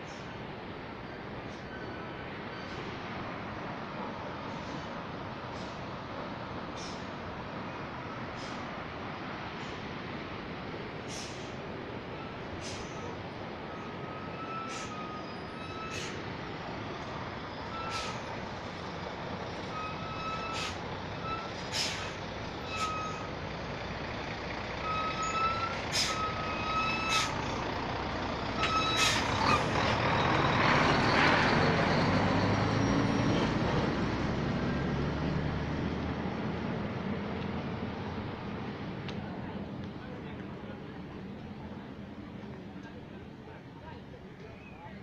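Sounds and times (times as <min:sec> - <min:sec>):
high squeaks and clicks: 0:25.0 - 0:27.4.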